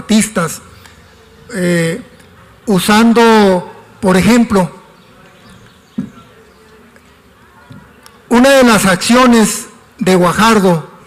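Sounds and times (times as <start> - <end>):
man speaking into a microphone: 0.0 - 0.8, 1.5 - 4.9, 8.3 - 11.0.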